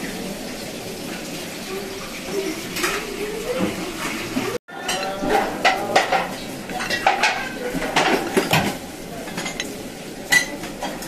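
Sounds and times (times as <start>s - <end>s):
metal utensils clinking on dishes: 2.3s - 11.0s.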